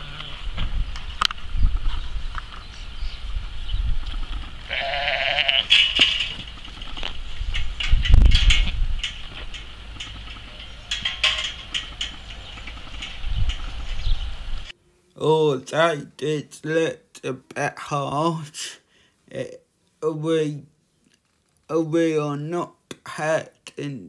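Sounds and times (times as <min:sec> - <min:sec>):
sheep bleating: 0:00.0 - 0:00.5, 0:04.6 - 0:05.8
wind rumble on microphone: 0:00.0 - 0:14.7.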